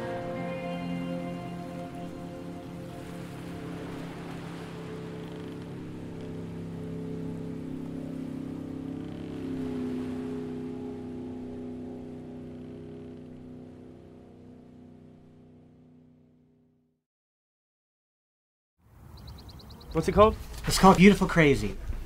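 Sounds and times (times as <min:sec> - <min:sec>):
song's closing chord held: 0:00.0 - 0:04.0.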